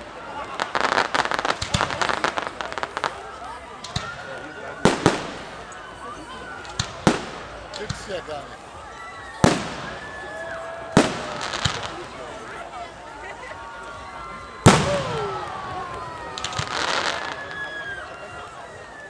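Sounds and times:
fireworks crackling: 0:00.0 - 0:19.0.

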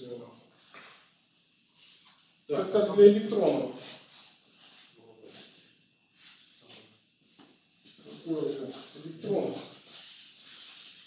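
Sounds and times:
chalk scratching on blackboard: 0:07.9 - 0:11.0
person speaking indistinctly: 0:08.0 - 0:09.7.

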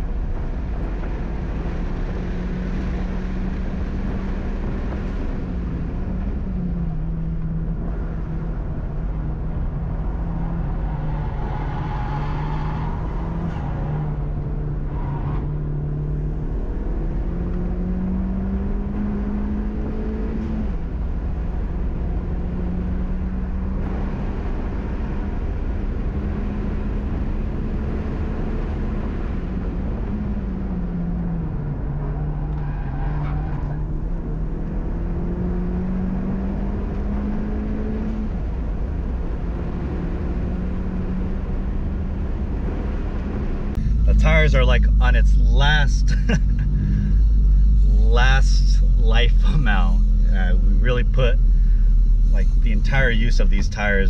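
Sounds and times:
car engine revving: 0:00.0 - 0:54.0
road and tyre noise: 0:00.0 - 0:54.0.

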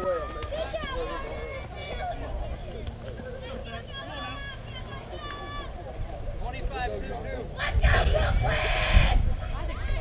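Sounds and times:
wind rumble on microphone: 0:07.6 - 0:10.0.

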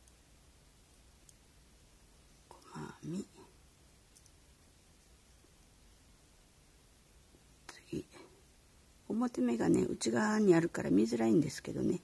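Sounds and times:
soft whispered vocal sound: 0:02.4 - 0:03.6, 0:07.6 - 0:08.5.

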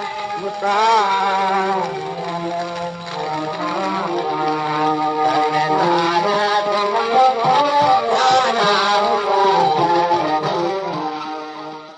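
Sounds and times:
gramophone song melody: 0:00.0 - 0:11.9.

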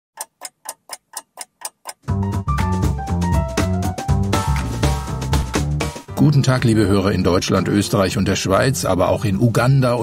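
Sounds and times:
clock ticking: 0:00.2 - 0:02.2.

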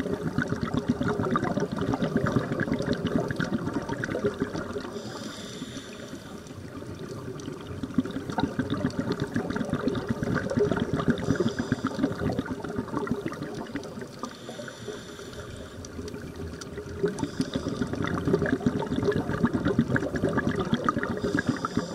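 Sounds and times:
exhaled bubbles rumbling: 0:00.0 - 0:05.2, 0:06.4 - 0:15.0, 0:15.6 - 0:21.9
diver inhaling through regulator: 0:04.8 - 0:06.6, 0:11.1 - 0:12.5, 0:14.2 - 0:16.0, 0:17.1 - 0:18.1, 0:21.0 - 0:21.9
reef crackle of fine clicks: 0:12.9 - 0:17.7.

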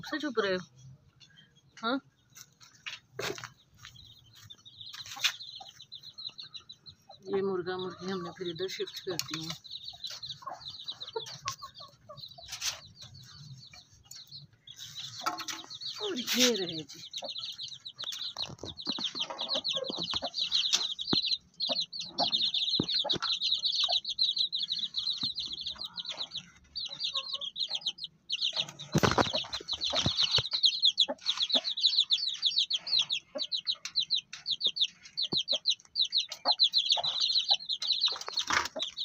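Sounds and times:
chicks peeping: 0:00.0 - 0:39.0
hen clucking: 0:00.0 - 0:39.0.

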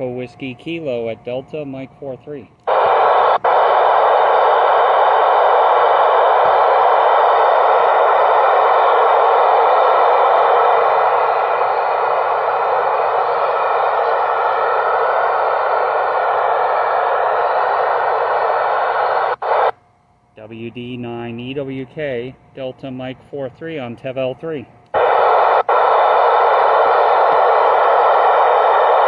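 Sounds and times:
radio hiss: 0:02.7 - 0:19.7, 0:25.0 - 0:29.0.

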